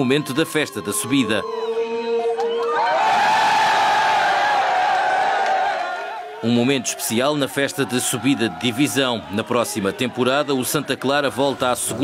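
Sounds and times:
crowd cheering and screaming: 0:00.0 - 0:12.0.

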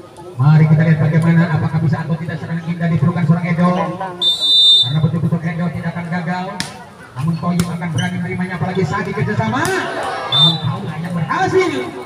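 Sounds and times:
referee's whistle blast: 0:04.2 - 0:05.0, 0:10.3 - 0:10.8.

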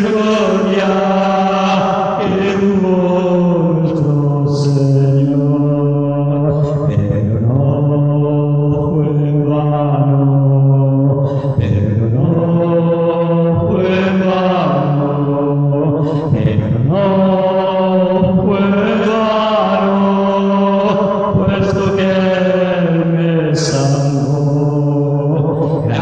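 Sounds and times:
man singing a hymn unaccompanied: 0:00.0 - 0:26.0.

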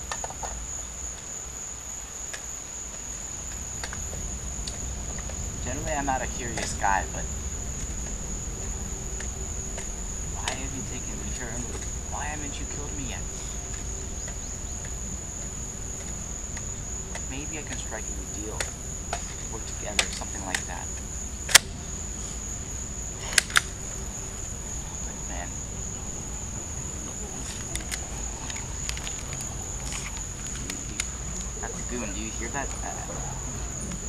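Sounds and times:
insects chirring: 0:00.0 - 0:34.0
low background rumble: 0:00.0 - 0:34.0
faint clicks: 0:27.4 - 0:31.7.

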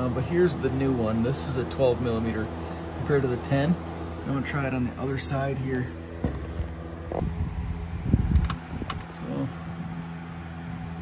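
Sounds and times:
steady low hum: 0:00.0 - 0:11.0
phone handling rumble: 0:06.1 - 0:09.2.

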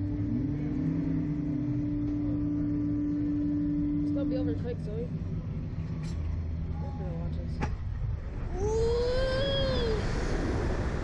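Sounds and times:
ride machinery humming: 0:00.0 - 0:11.0.

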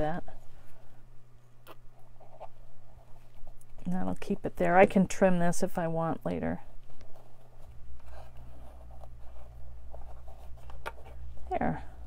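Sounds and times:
steady low hum: 0:00.0 - 0:12.0
fabric rustling against card: 0:06.4 - 0:12.0.

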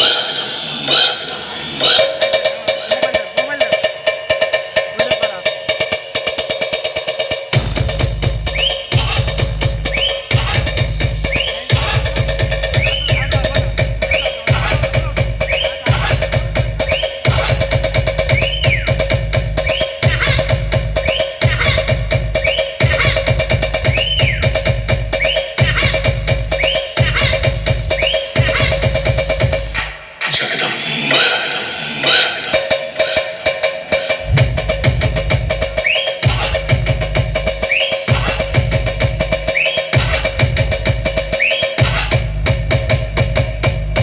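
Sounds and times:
electronic dance music: 0:00.0 - 0:44.0
heavy bass beats: 0:00.0 - 0:44.0.

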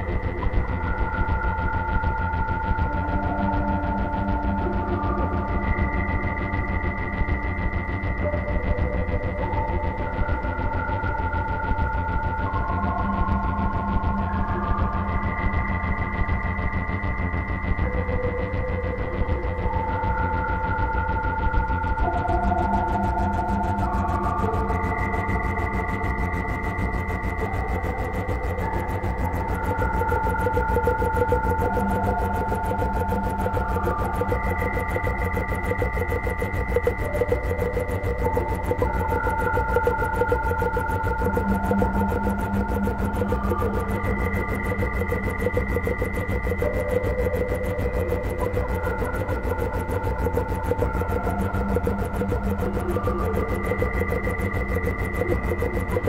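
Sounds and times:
ambient synthesizer music: 0:00.0 - 0:56.0
pulsing low throb: 0:00.0 - 0:56.0.

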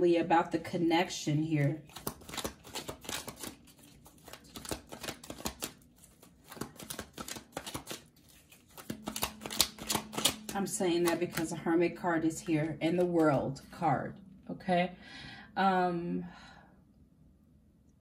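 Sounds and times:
cards being shuffled by hand: 0:01.6 - 0:11.6.

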